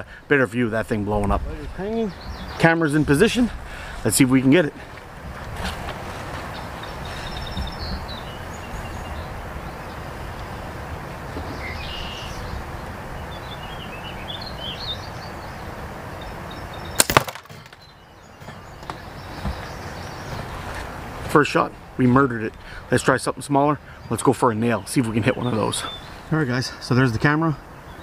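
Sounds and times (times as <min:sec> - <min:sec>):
wind noise: 0:00.0 - 0:17.0
faint bird chirps: 0:11.3 - 0:12.6
slingshot double crack: 0:17.0 - 0:17.8
ball smashing plastic lighter: 0:17.0 - 0:17.9.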